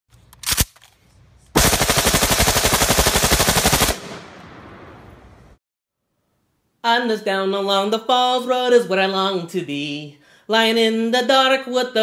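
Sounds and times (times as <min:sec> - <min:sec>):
automatic gunfire burst: 0:01.6 - 0:04.4.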